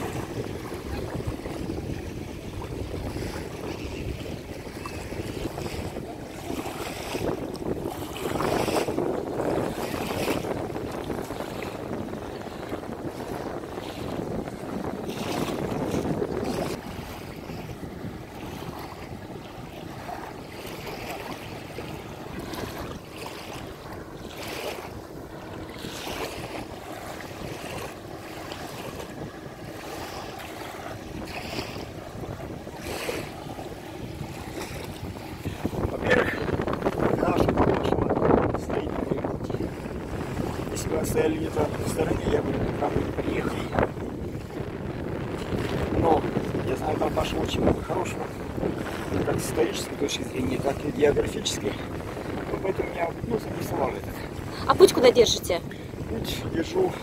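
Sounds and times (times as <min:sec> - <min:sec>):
water lapping at shore: 0:00.0 - 0:57.0
wind buffeting microphone: 0:00.0 - 0:57.0.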